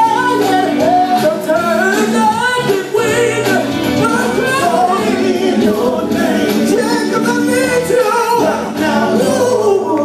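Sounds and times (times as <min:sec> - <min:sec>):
men singing gospel in harmony: 0:00.0 - 0:10.0.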